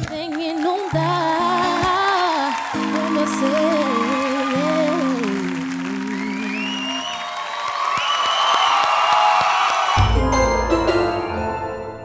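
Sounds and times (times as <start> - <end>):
audience applauding and cheering: 0.0 - 11.7
person singing with acoustic guitar: 0.1 - 7.0
high rising whistles: 6.2 - 9.2.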